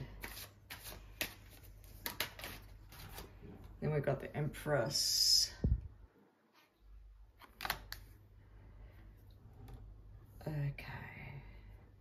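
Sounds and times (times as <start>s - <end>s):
low steady hum: 2.7s - 12.0s
woman speaking softly: 3.8s - 5.7s, 10.4s - 11.6s.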